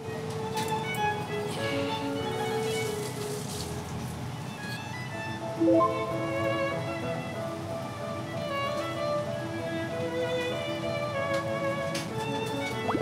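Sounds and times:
light string music: 0:00.0 - 0:13.0.

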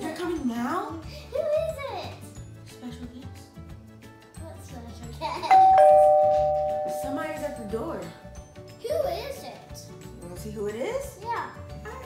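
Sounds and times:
doorbell chime ding-dong: 0:05.5 - 0:08.1.

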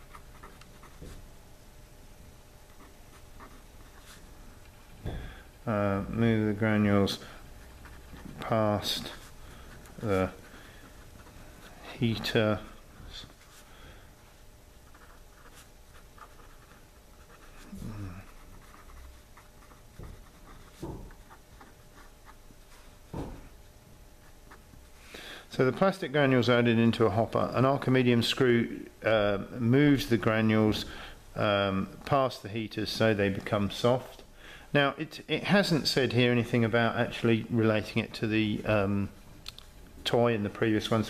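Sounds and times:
pen scratching on paper: 0:00.0 - 0:01.3, 0:02.7 - 0:04.2, 0:07.0 - 0:12.2, 0:14.8 - 0:22.4
pen writing on paper: 0:14.9 - 0:22.4.

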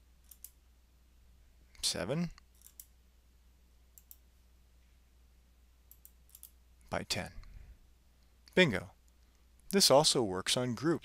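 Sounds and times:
computer mouse clicks: 0:00.2 - 0:00.6, 0:02.4 - 0:02.9, 0:04.0 - 0:04.2, 0:05.9 - 0:06.6.

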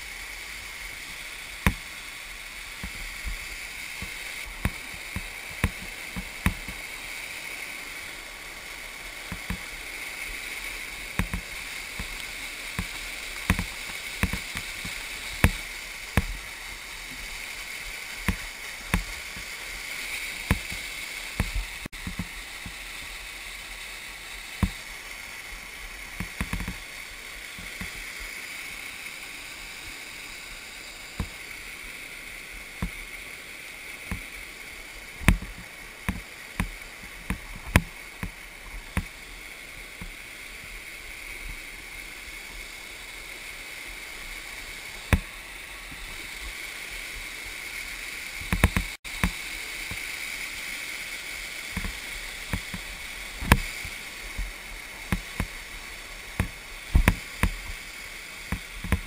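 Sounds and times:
waterfall rushing: 0:00.0 - 0:59.0
sharp knocks and taps: 0:01.6 - 0:01.8, 0:04.0 - 0:06.8, 0:09.3 - 0:09.6, 0:11.2 - 0:12.1, 0:12.8 - 0:15.6, 0:18.2 - 0:19.5, 0:20.5 - 0:20.8, 0:21.4 - 0:22.8, 0:24.6 - 0:24.8, 0:26.2 - 0:26.8, 0:35.2 - 0:39.1, 0:48.5 - 0:49.4, 0:55.1 - 0:55.5, 0:56.4 - 0:57.7, 0:58.5 - 0:59.0.

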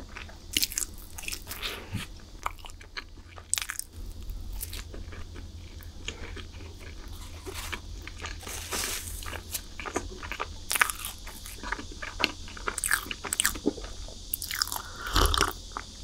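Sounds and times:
chewing crunchy snacks: 0:00.0 - 0:16.0.

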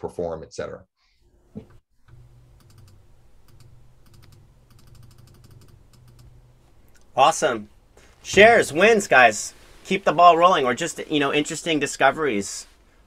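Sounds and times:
low steady hum: 0:01.2 - 0:13.0
typing on computer keyboard: 0:02.6 - 0:06.3.

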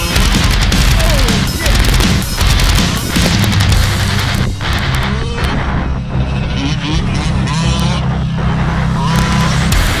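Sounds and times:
small two-stroke engine revving: 0:06.2 - 0:08.3.

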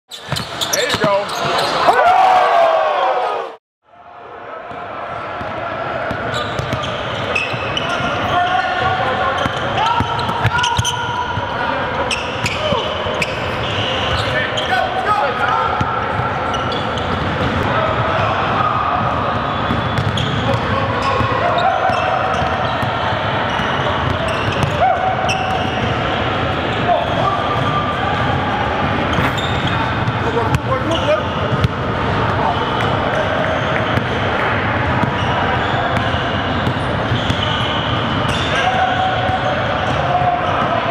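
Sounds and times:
players shouting and talking: 0:00.3 - 0:40.9.

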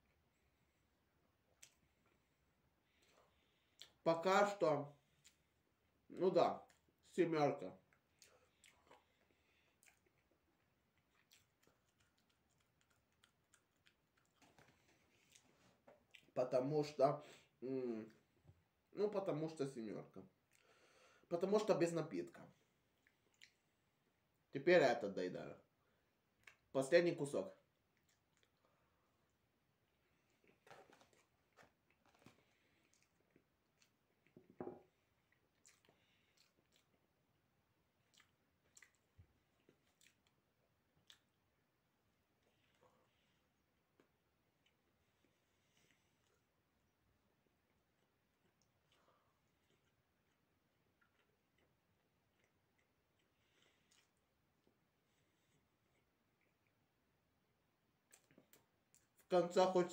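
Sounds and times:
person chewing dry cake: 0:00.0 - 0:04.0, 0:05.0 - 0:07.0, 0:07.8 - 0:16.4, 0:22.6 - 0:24.4, 0:27.6 - 0:59.3.

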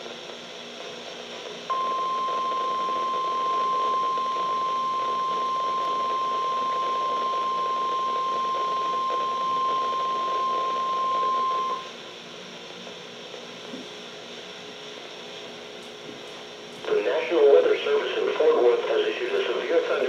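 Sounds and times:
steady high alarm beep: 0:01.7 - 0:11.9.

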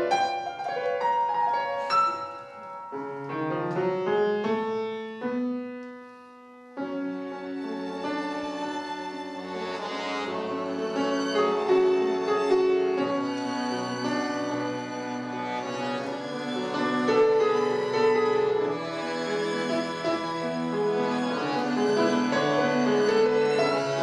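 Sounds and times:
grand piano: 0:00.0 - 0:24.0
violin: 0:00.0 - 0:24.0
button accordion: 0:08.2 - 0:12.5, 0:13.2 - 0:24.0.

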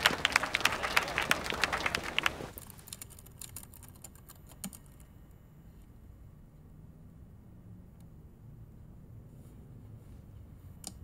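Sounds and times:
crowd applauding: 0:00.0 - 0:02.5.

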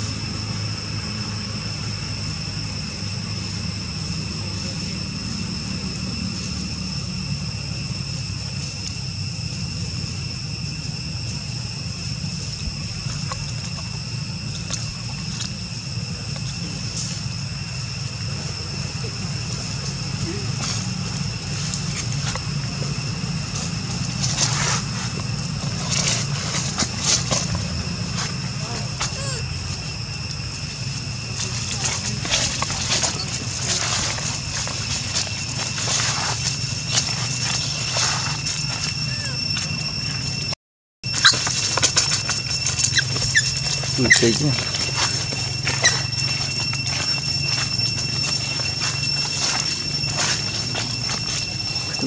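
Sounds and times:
steady low hum: 0:00.0 - 0:52.0
thin high whine: 0:00.0 - 0:52.0
dry leaves crackling under steps: 0:18.7 - 0:40.4, 0:41.1 - 0:52.0.

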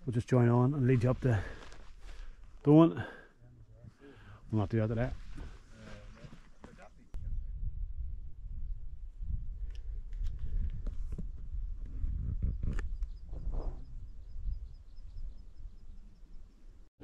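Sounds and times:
wind buffeting microphone: 0:07.2 - 0:16.4.

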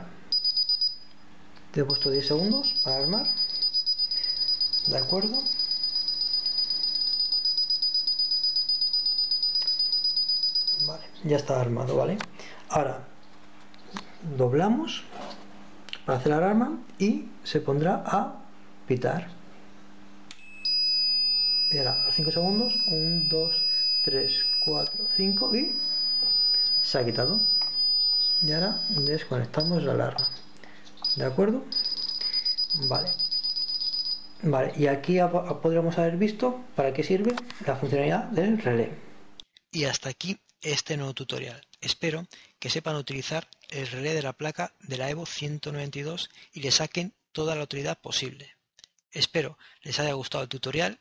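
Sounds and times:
alarm keypad buzzer beeping: 0:00.3 - 0:01.0, 0:01.9 - 0:11.0, 0:20.4 - 0:30.4, 0:31.0 - 0:34.3.

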